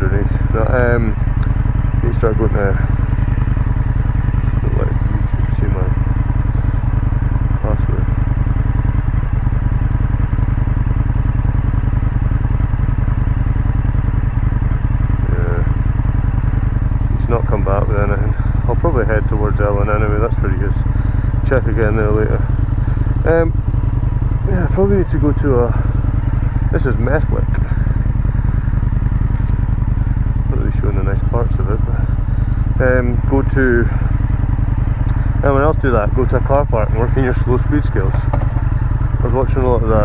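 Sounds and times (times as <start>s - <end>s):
motorcycle engine idling: 0.0s - 40.0s.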